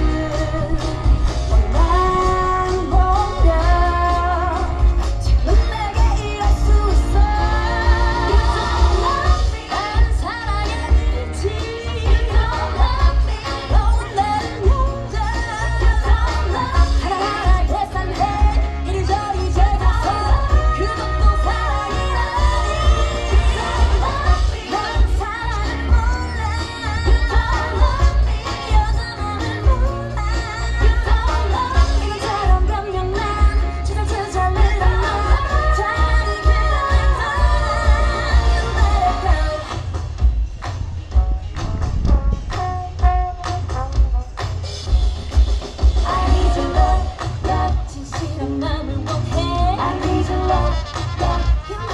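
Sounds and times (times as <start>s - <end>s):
pop song over loudspeakers: 0.0s - 51.9s
female vocals: 1.6s - 39.8s, 46.0s - 51.9s.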